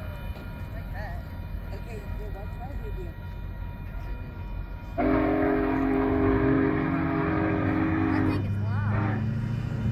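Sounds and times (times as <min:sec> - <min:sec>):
steam whistle chord: 0:05.0 - 0:08.3.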